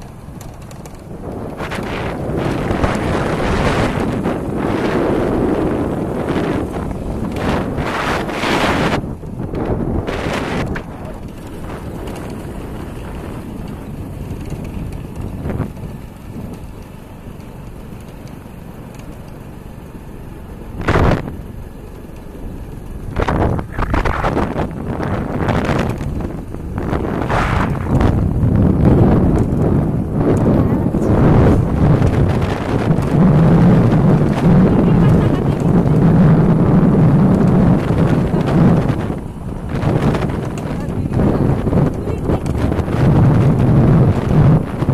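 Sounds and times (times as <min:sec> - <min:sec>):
wind buffeting microphone: 0:00.0 - 0:19.1, 0:20.1 - 0:44.9.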